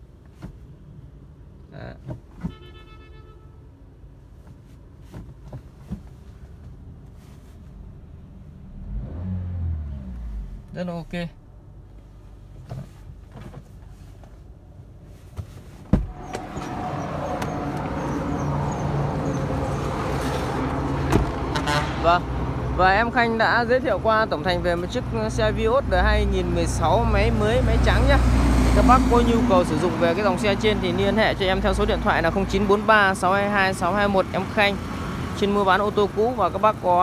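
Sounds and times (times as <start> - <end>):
engine and street traffic: 0.0 - 37.0
car engine idling: 6.8 - 14.1
car door shutting knock: 15.9 - 16.6.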